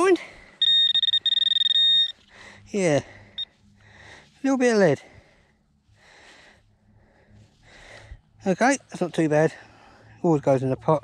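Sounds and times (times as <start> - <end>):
pinpointer buzzer high electronic tone: 0.6 - 2.2.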